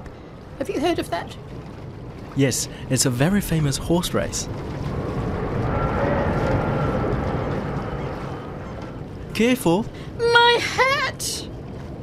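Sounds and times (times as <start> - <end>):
wind: 0.0 - 12.0.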